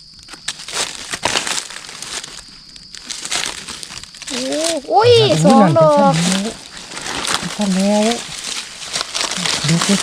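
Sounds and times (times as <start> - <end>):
dry leaves crackling and rustling: 0.5 - 10.0
person speaking: 4.3 - 6.6.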